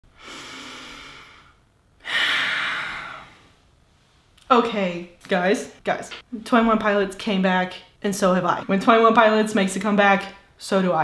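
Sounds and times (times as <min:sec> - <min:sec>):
woman breathing: 0:00.1 - 0:03.7.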